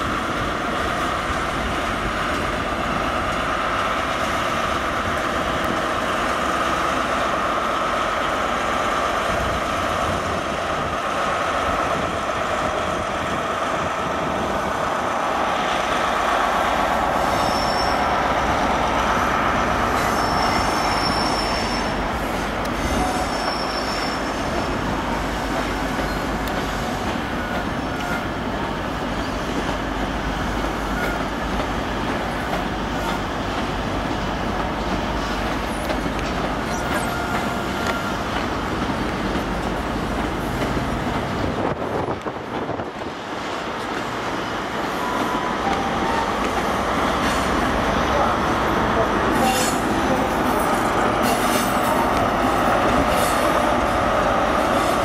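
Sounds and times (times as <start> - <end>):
train rumbling slowly: 0.0 - 55.0
train wheels squealing: 17.2 - 18.3, 19.8 - 24.8, 25.5 - 28.3, 29.1 - 29.8, 30.7 - 31.4, 35.1 - 38.4, 49.4 - 49.9.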